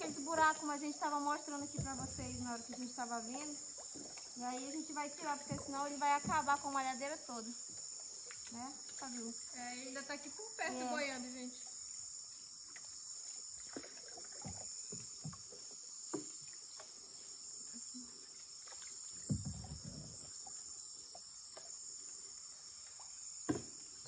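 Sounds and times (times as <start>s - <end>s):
paddles knocking wooden canoes: 0.0s - 11.7s, 12.7s - 21.8s, 23.0s - 24.0s
high-pitched insect chorus: 0.0s - 24.0s.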